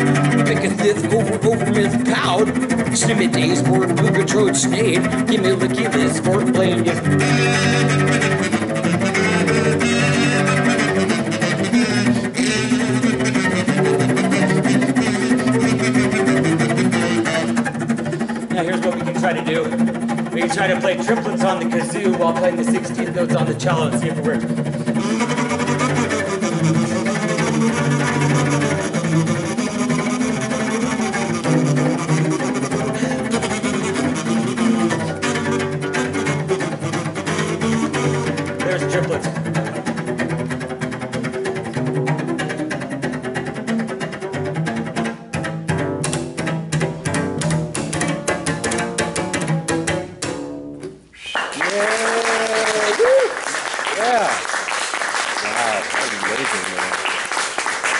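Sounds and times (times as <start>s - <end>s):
bowed cello: 0.0s - 57.9s
kazoo buzzing a melody: 6.0s - 18.7s, 24.8s - 38.7s
applause: 51.2s - 57.9s.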